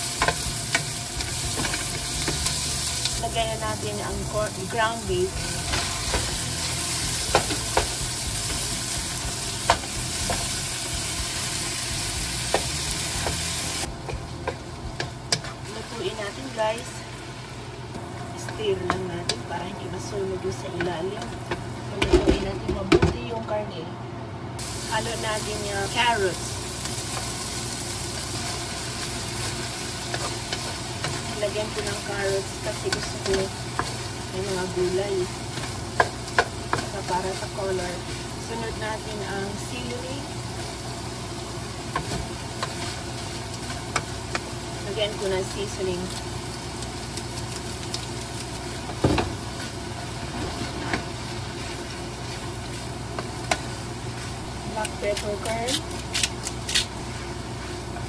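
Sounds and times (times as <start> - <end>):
meat sizzling in a frying pan: 0.0 - 17.8, 24.6 - 58.0
steady low hum: 0.0 - 58.0.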